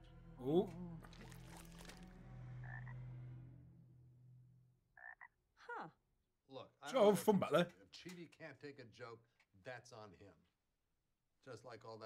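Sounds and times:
frog croaking: 0:02.6 - 0:03.1, 0:05.0 - 0:05.4.

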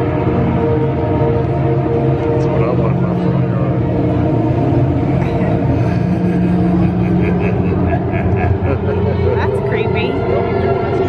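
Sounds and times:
low spooky drone music: 0:00.0 - 0:11.0
crowd voices: 0:02.3 - 0:11.0.

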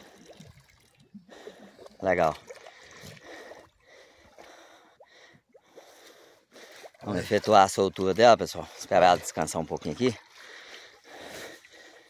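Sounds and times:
water sloshing and splashing: 0:00.0 - 0:12.0.

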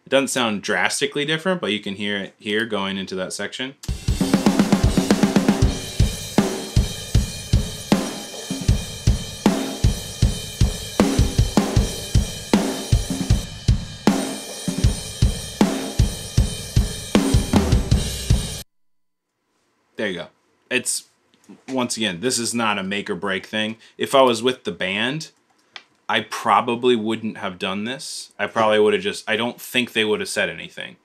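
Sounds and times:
kick and snare drum beat: 0:03.8 - 0:18.6.

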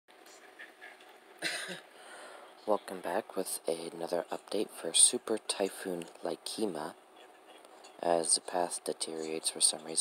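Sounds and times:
person coughing: 0:01.4 - 0:01.9.

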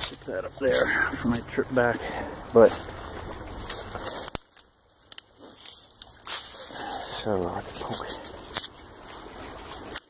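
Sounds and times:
dry leaves and twigs crackling: 0:00.0 - 0:10.0.

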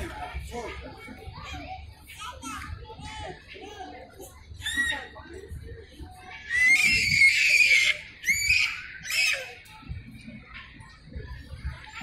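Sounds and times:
young child squealing: 0:06.5 - 0:09.5.

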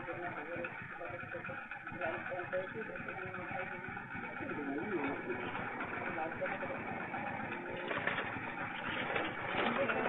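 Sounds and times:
motorcycle engine idling: 0:00.0 - 0:10.0
people talking: 0:00.0 - 0:10.0.

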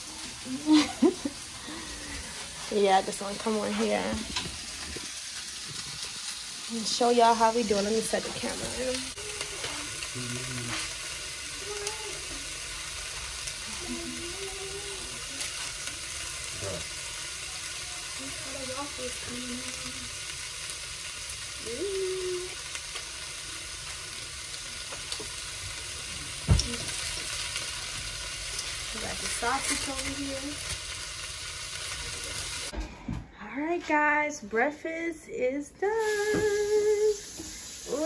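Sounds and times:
food sizzling in frying pan: 0:00.0 - 0:32.7, 0:35.9 - 0:38.0
faint voices: 0:09.2 - 0:10.9.

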